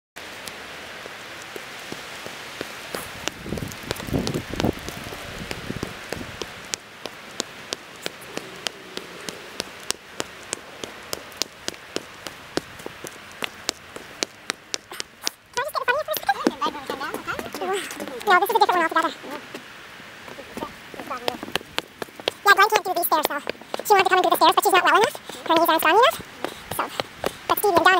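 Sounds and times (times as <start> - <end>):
raindrops ticking: 0.2 - 27.9
steady rain hiss: 0.2 - 27.9
low thumps: 2.9 - 14.9.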